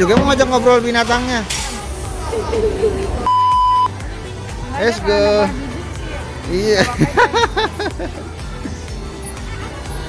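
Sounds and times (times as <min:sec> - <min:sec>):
electronic censor beep: 0:03.2 - 0:03.9.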